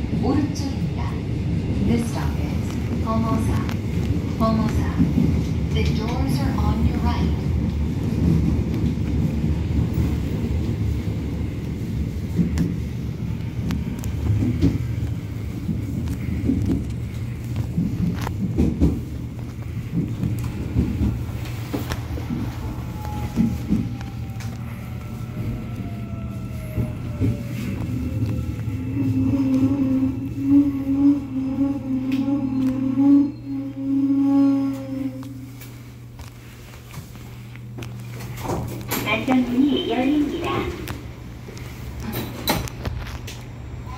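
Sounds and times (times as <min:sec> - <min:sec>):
train rumbling in tunnel: 0:00.0 - 0:43.9.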